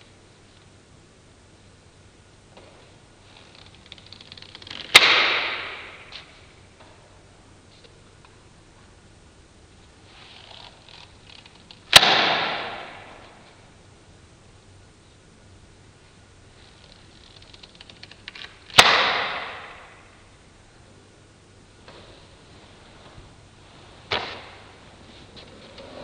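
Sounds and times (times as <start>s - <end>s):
rubber rubbing: 3.2s - 5.8s
rubber snapping with sharp crack: 3.6s - 6.3s, 11.8s - 13.3s, 17.8s - 20.0s.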